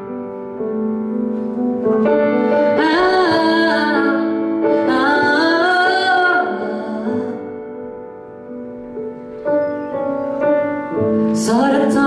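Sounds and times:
grand piano accompaniment: 0.0s - 12.0s
woman singing a slow ballad: 2.6s - 7.6s, 11.3s - 12.0s.

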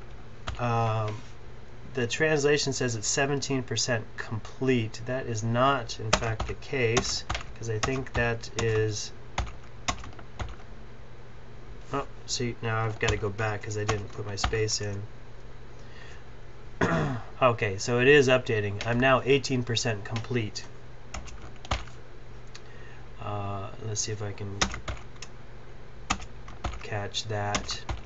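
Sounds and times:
computer keyboard keystrokes: 6.1s - 8.8s, 9.4s - 10.6s, 21.2s - 21.9s, 24.6s - 25.3s, 26.1s - 26.8s, 27.5s - 28.0s.

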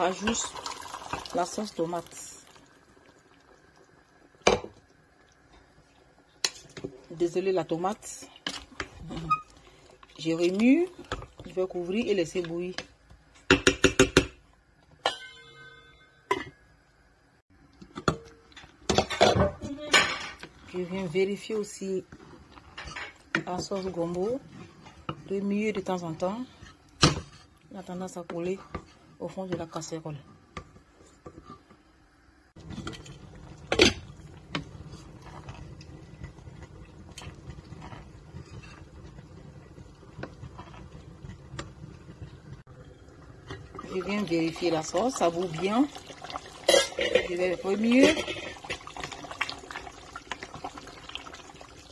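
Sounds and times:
spatula scraping metal pot: 46.7s - 48.8s.

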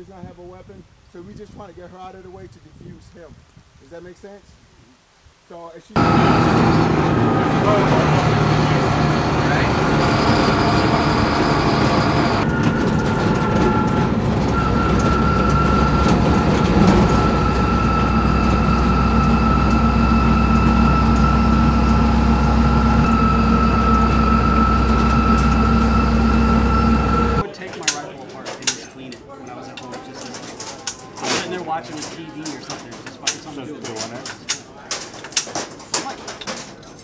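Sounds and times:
high whine: 6.0s - 27.4s
truck engine rumble: 6.0s - 27.5s.

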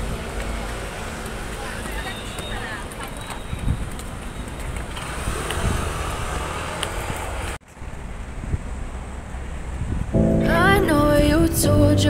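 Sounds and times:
wind buffeting microphone: 3.4s - 12.0s.

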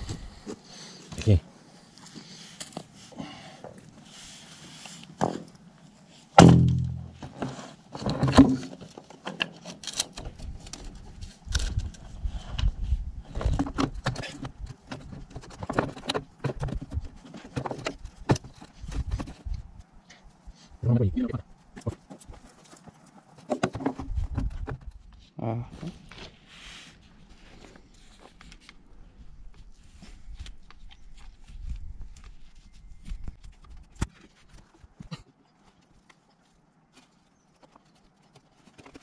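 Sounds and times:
short low voice sound: 20.8s - 21.4s, 25.4s - 26.0s.

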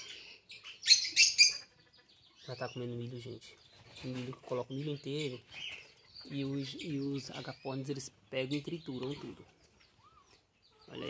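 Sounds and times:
high-pitched bird chirps: 0.0s - 3.2s, 8.7s - 11.0s.

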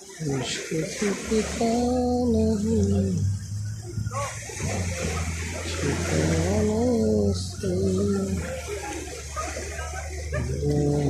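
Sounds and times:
low hum: 0.2s - 11.0s.

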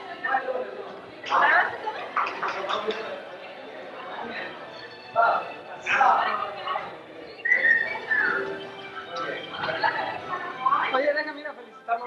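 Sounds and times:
crowd chatter: 0.0s - 12.0s
person whistling: 7.4s - 8.4s.

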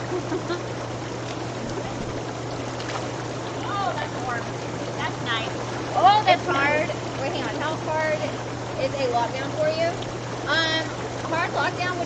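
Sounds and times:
bubbling hot tub jets: 0.0s - 12.0s
low motor hum: 0.0s - 12.0s
women's voices: 3.6s - 12.0s.

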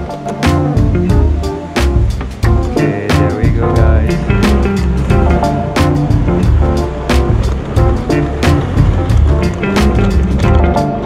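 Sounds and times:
bass line: 0.0s - 11.0s
steady drum beat: 0.0s - 11.0s.

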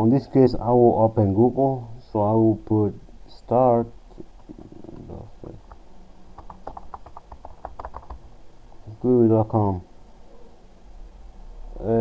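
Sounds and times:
keyboard key clicks: 6.4s - 8.2s.

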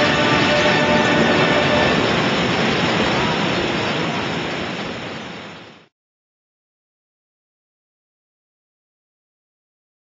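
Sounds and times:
water rushing through rock gorge: 0.0s - 5.9s.

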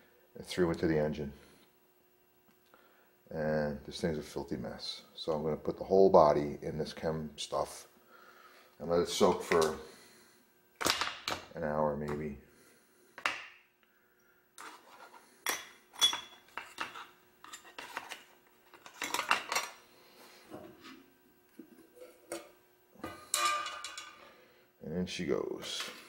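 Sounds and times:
metal parts clinking and clattering: 23.3s - 24.2s.

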